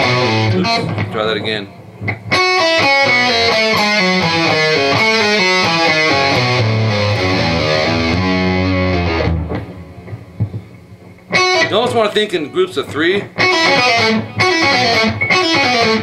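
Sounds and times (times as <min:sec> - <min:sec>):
electric guitar country lick: 0:00.0 - 0:16.0.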